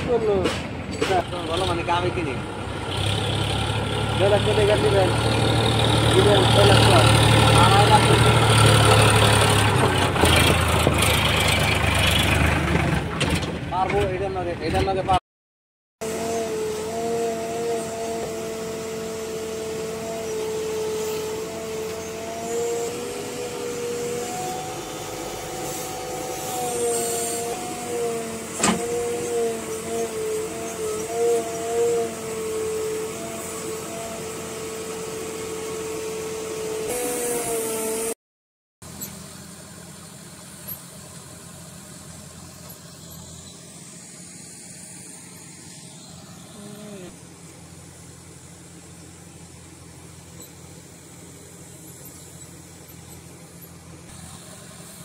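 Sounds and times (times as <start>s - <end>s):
diesel engine running: 0.0s - 15.2s, 16.0s - 38.1s, 38.8s - 55.0s
vehicle engine noise: 0.0s - 15.2s, 16.0s - 38.2s, 38.8s - 55.0s.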